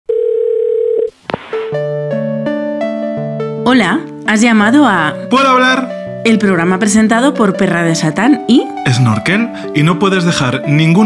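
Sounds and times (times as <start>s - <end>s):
telephone dial tone: 0.1s - 1.1s
keyboard tune with held chords: 1.8s - 11.0s.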